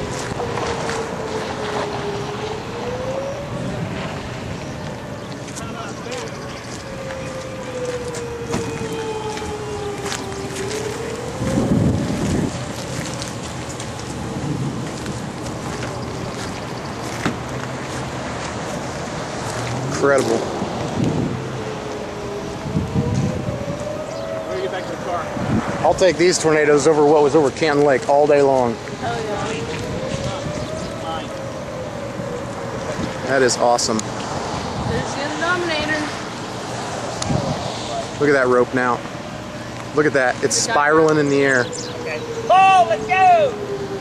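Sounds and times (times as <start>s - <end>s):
tornado warning siren wailing: 0.0s - 44.0s
wind buffeting microphone: 0.0s - 44.0s.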